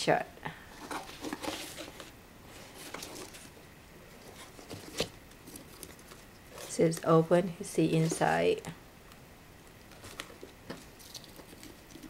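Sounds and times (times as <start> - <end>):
hands handling cardboard box: 0.8 - 3.6, 4.2 - 7.1, 7.9 - 8.4.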